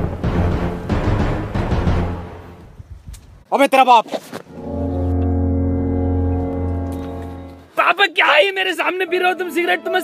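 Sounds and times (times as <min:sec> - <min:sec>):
deep horn-like tone: 0:04.5 - 0:07.8.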